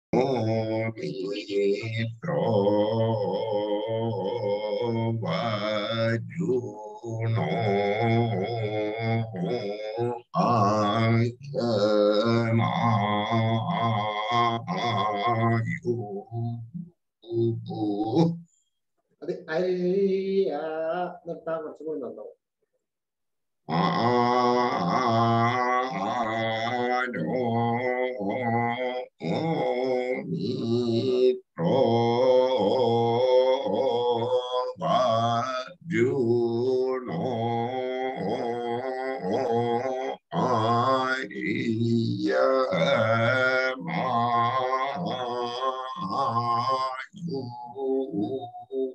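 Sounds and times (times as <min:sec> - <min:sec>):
man chanting in low voice: 0:00.1 - 0:18.4, 0:19.2 - 0:22.4, 0:23.6 - 0:48.9.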